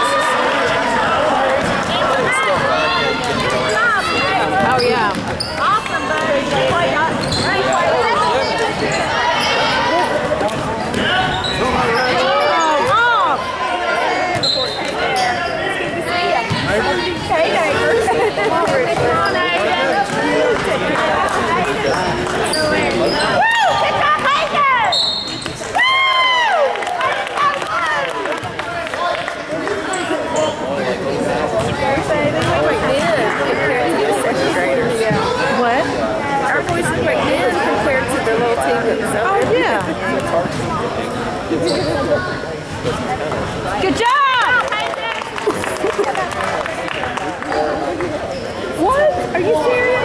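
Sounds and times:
spectators chattering: 0:00.0 - 0:50.0
sneakers squeaking on gym floor: 0:03.6 - 0:06.0, 0:06.6 - 0:08.0, 0:10.8 - 0:13.0, 0:14.3 - 0:15.6, 0:24.9 - 0:25.7, 0:41.6 - 0:42.4.

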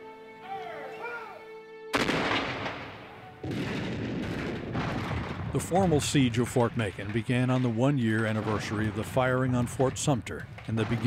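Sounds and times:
soft music: 0:00.0 - 0:03.4
cannon booms: 0:01.9 - 0:11.0.

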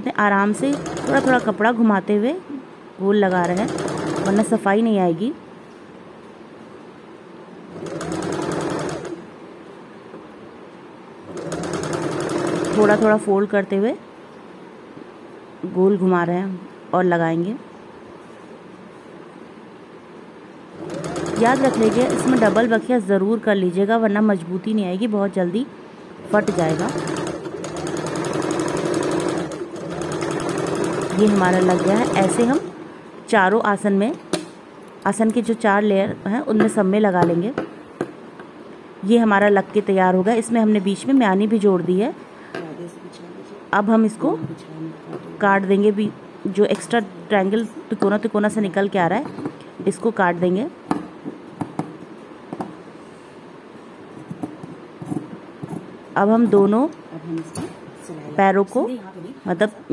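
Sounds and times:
electric sewing machine stitching: 0:00.6 - 0:01.5, 0:03.4 - 0:04.5, 0:07.7 - 0:09.2, 0:11.2 - 0:13.2, 0:20.8 - 0:22.8, 0:26.3 - 0:32.7.

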